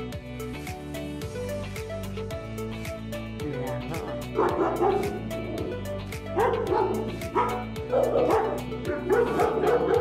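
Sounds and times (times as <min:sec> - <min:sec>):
background music with steady beat: 0:00.0 - 0:10.0
dog yelping: 0:04.1 - 0:05.3, 0:06.4 - 0:10.0.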